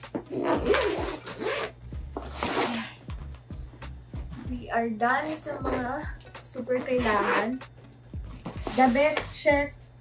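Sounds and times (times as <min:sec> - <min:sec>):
suitcase zipper rasping: 0:00.2 - 0:03.0, 0:05.2 - 0:06.1, 0:06.7 - 0:07.6, 0:08.3 - 0:09.3.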